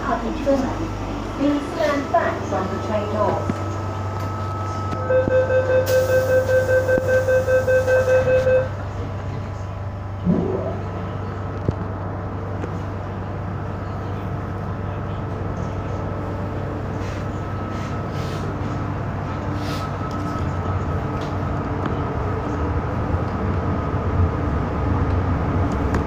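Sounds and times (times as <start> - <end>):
train carriage low hum: 0.0 - 26.0
rapid door warning beeps: 4.3 - 8.7.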